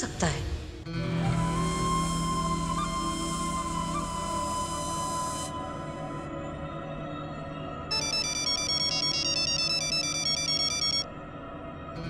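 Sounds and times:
mobile phone ringtone: 0:07.9 - 0:11.1.

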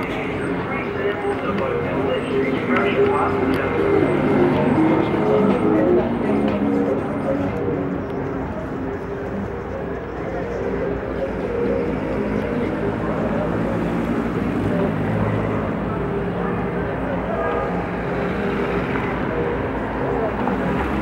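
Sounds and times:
chatter of people: 0:00.0 - 0:21.0
cars driving past: 0:10.6 - 0:21.0.

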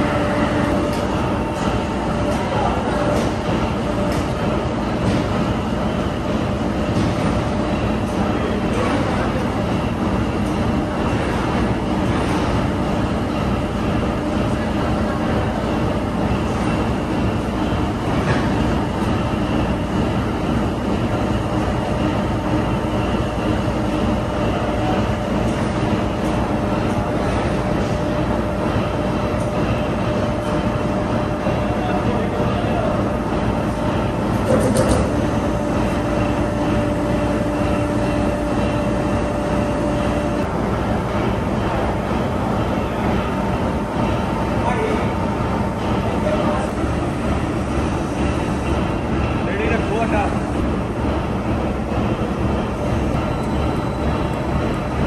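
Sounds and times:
factory machinery rumble: 0:00.0 - 0:55.0.

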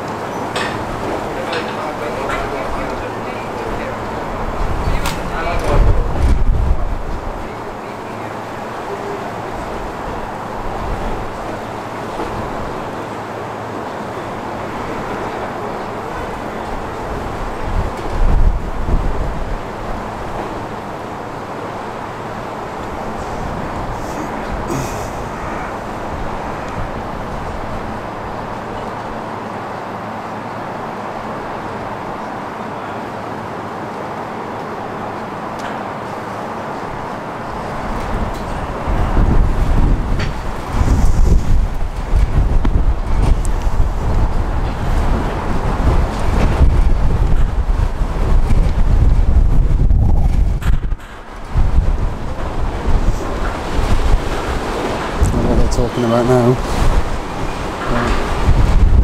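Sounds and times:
wind buffeting microphone: 0:00.0 - 0:32.3, 0:36.5 - 0:59.0.

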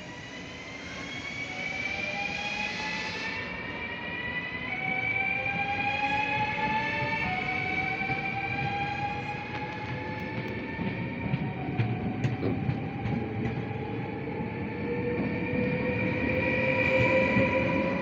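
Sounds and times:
wheels rumbling on rails: 0:06.3 - 0:18.0.

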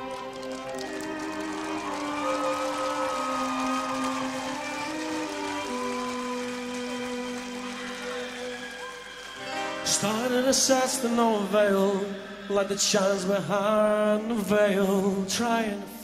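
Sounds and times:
violin melody: 0:00.0 - 0:14.0.

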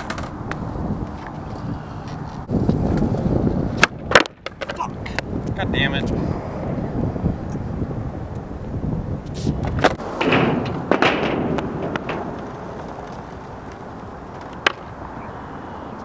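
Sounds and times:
skateboard clacks: 0:00.0 - 0:05.3, 0:09.4 - 0:15.2
skateboard wheels rolling on asphalt: 0:00.0 - 0:16.0.

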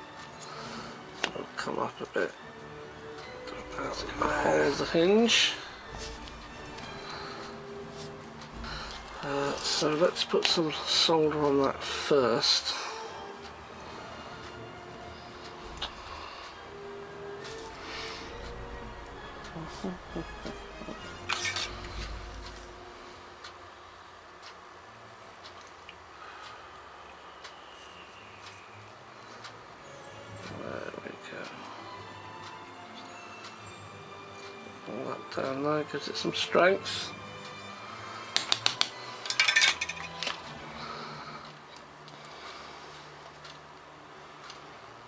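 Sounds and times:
faint background sound: 0:00.0 - 0:38.3
man laughing: 0:19.6 - 0:20.6
small metal parts clicking: 0:39.2 - 0:40.4.

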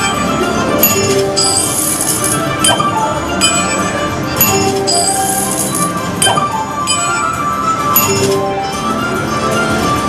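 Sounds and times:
slot machine game music: 0:00.0 - 0:10.0
chiming and clinking effects: 0:00.8 - 0:08.5
sharp chimes: 0:02.6 - 0:07.3.

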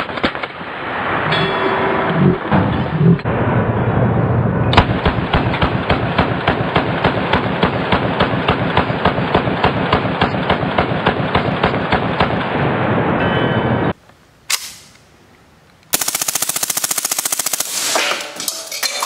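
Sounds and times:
submachine gun automatic fire: 0:15.9 - 0:18.1.

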